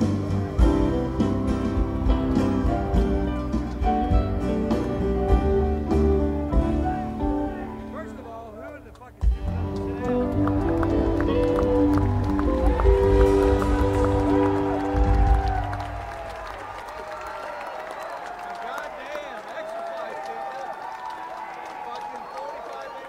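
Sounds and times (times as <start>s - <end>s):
live band playing: 0.0s - 8.2s, 8.9s - 16.8s
audience cheering and whistling: 10.5s - 23.0s.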